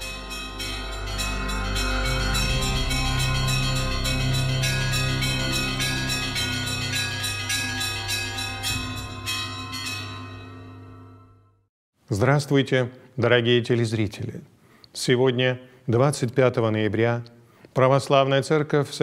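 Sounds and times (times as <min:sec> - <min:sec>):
steady low drone: 0:00.0 - 0:09.6
church bells pealing rapidly: 0:00.0 - 0:11.3.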